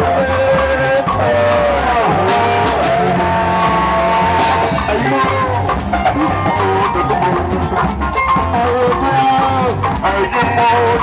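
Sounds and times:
drum kit beat: 0.0s - 11.0s
electric guitars: 0.0s - 11.0s.

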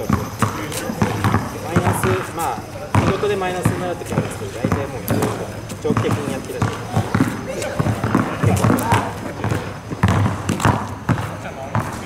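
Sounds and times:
basketball bouncing on asphalt: 0.0s - 12.0s
people talking: 0.0s - 12.0s.

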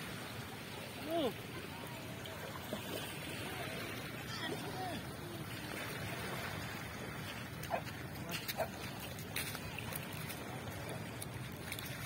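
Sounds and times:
waves washing over pebbles: 0.0s - 12.0s.

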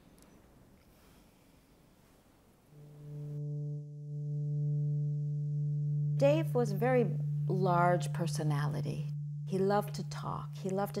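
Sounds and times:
low drone background music: 2.8s - 11.0s.

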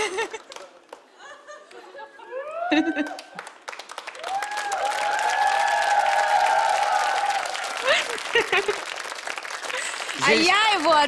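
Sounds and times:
audience applauding: 0.0s - 1.1s, 2.4s - 11.0s.

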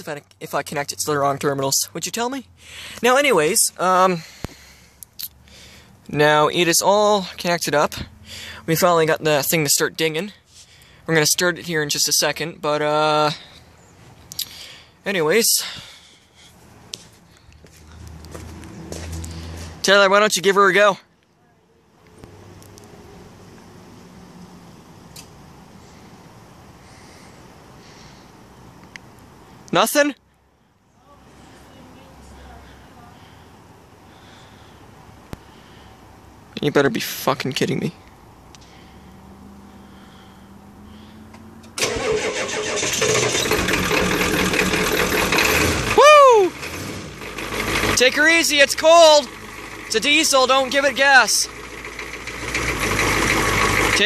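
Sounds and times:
diesel engine starting: 2.6s - 12.2s, 14.3s - 15.0s, 17.3s - 20.0s, 38.6s - 54.0s
footsteps: 16.4s - 19.8s.

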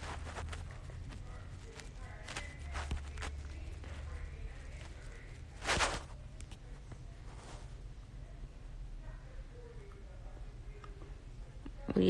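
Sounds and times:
rustling against bedding: 0.0s - 7.9s.

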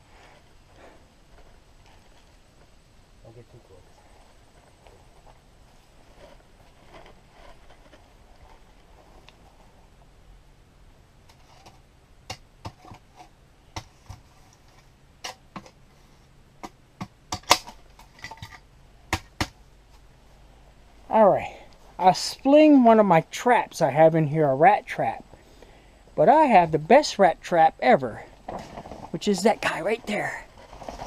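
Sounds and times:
faint background hiss: 0.0s - 31.0s.

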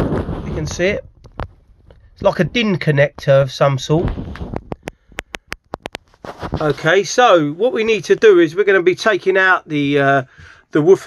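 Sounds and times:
soft rustle: 3.9s - 7.3s.

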